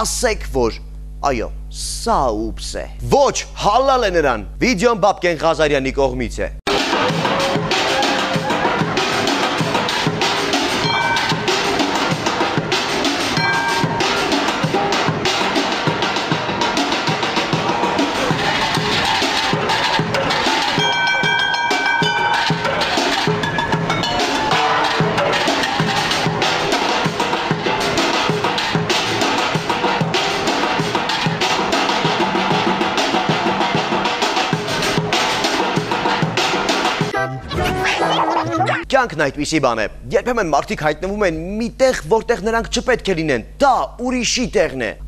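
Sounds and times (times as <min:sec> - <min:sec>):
drumming on pots and buckets: 0:06.7 - 0:37.1
metal pans ringing: 0:10.8 - 0:11.8, 0:20.2 - 0:26.6.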